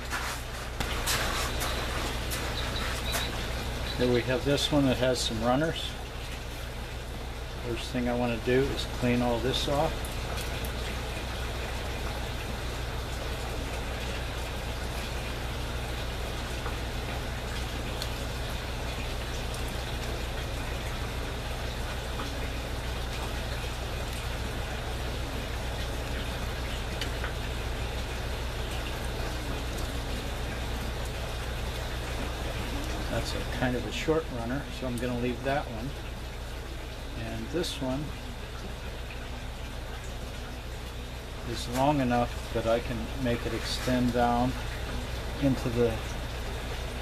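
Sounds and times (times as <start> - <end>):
water trickling and pattering: 0.0 - 47.0.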